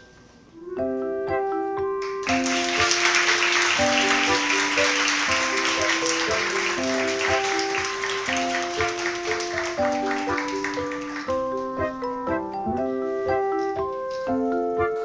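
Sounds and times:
keyboard background melody: 0.0s - 15.0s
audience applause: 2.1s - 12.0s.

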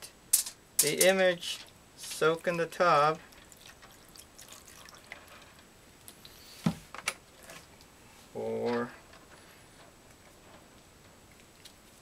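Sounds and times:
liquid trickling into plastic tub: 3.3s - 5.3s.

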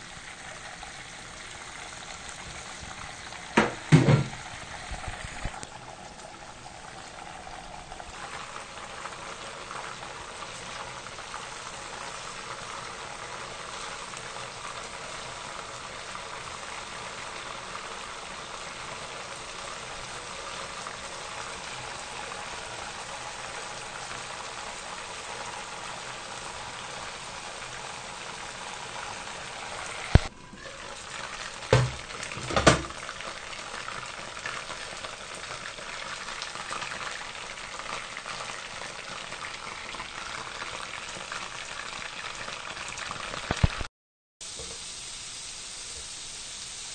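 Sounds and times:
oil bubbling and hissing: 0.0s - 46.9s.

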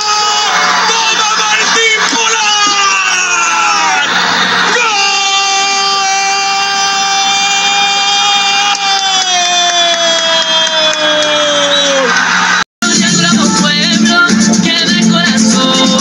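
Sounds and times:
commentator's long goal shout: 0.0s - 4.1s, 4.7s - 12.1s
crowd noise: 0.0s - 8.7s, 10.1s - 13.1s.

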